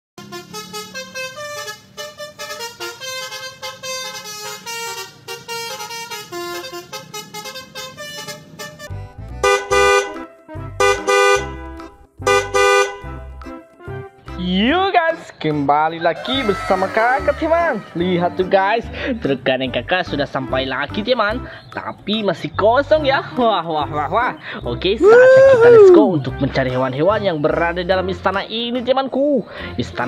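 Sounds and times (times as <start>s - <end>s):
vehicle horn honking: 0.2s - 13.1s
upbeat music: 0.2s - 30.0s.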